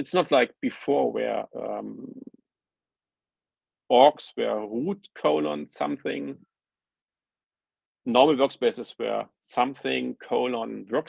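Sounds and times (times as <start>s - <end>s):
man speaking: 0.0s - 2.3s, 3.9s - 6.4s, 8.1s - 11.0s.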